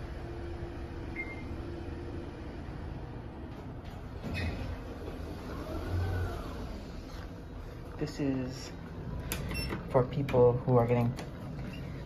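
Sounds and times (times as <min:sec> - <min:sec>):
door motor rumbling and whining: 0:00.0 - 0:08.0
elevator cab hum: 0:00.0 - 0:12.0.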